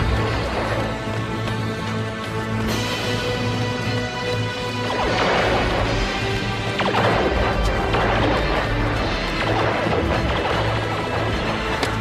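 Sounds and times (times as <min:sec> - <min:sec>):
dramatic orchestral score: 0:00.0 - 0:12.0
loud crashing noises: 0:04.8 - 0:12.0.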